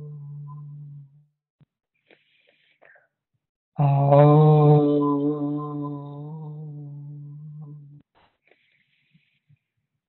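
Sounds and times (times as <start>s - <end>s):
man chanting one long tone: 3.8s - 8.0s.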